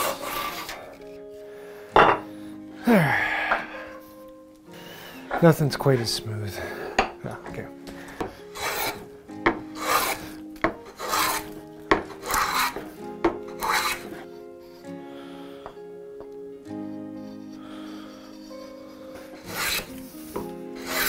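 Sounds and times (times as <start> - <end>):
hand plane rasping on wood: 0.0 - 0.8, 8.2 - 12.9, 13.5 - 14.3, 17.2 - 21.0
background music: 0.0 - 21.0.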